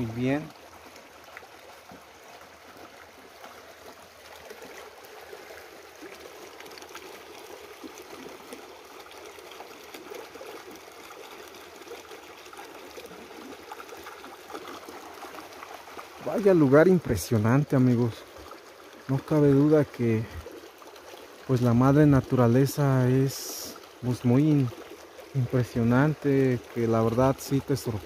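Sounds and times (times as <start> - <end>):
creek trickling over stones: 0.0 - 28.0.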